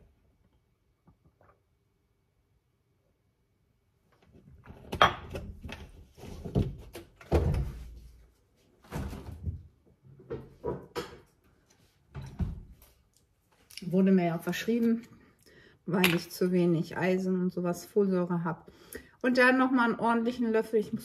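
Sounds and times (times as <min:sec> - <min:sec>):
cupboard door opening and shutting: 0:04.3 - 0:08.1, 0:12.1 - 0:12.8.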